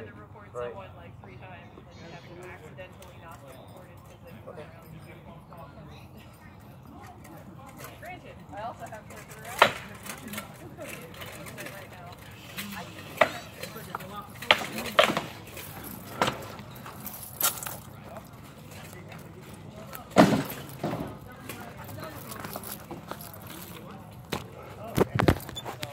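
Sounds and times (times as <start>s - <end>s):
low talk: 0.0s - 25.9s.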